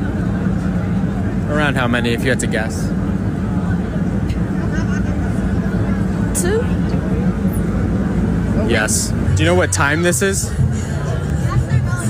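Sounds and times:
city street traffic rumble: 0.0s - 12.0s.

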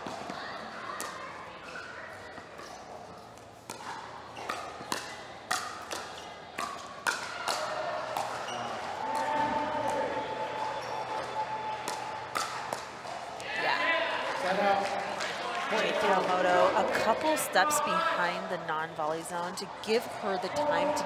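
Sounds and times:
crowd voices: 0.0s - 21.0s
paddles hitting plastic ball: 3.4s - 8.5s, 11.8s - 13.5s.

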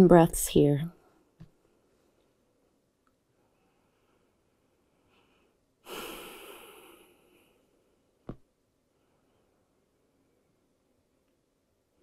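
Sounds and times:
person exhaling: 5.8s - 7.6s.

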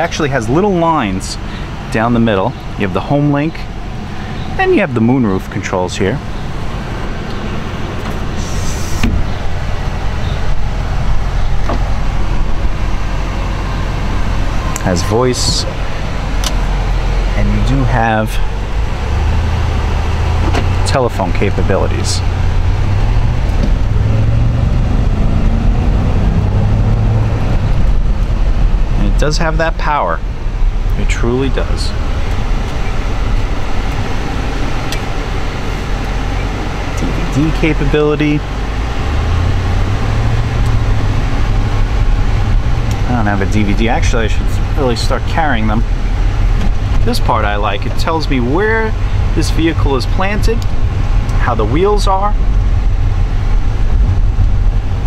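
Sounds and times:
car engine idling: 0.0s - 55.0s
brief hiss: 8.4s - 9.2s.

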